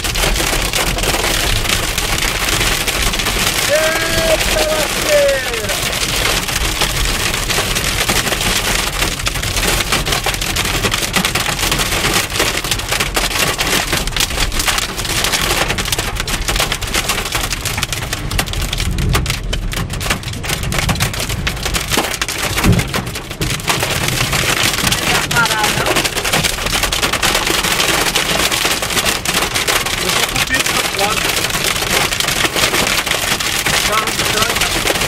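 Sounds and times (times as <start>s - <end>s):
hail clattering on car roof: 0.0s - 35.0s
rain hiss: 2.2s - 7.1s, 27.6s - 35.0s.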